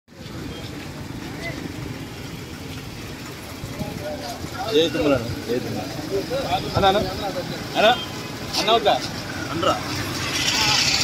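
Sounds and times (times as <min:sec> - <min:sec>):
street traffic: 0:00.1 - 0:11.0.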